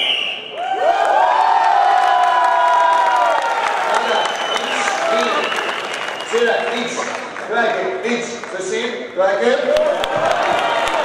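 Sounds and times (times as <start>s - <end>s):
short whistle: 0.0s - 0.6s.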